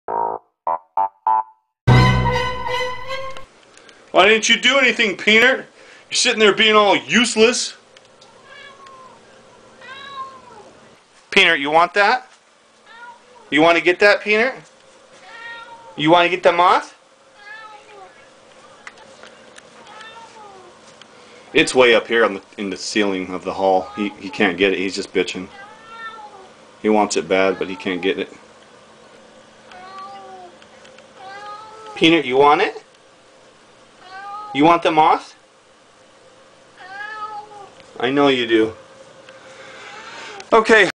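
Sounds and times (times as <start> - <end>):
cat meowing faintly: 8.2 - 10.8, 15.2 - 16.0, 17.4 - 18.3, 19.8 - 20.8, 23.6 - 24.6, 25.4 - 26.6, 27.4 - 28.1, 29.7 - 32.0, 36.8 - 37.8.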